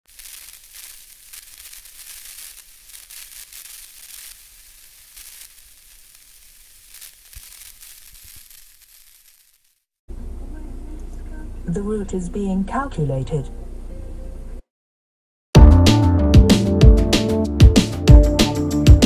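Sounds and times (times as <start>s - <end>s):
hissing crackle: 0.0s - 9.9s.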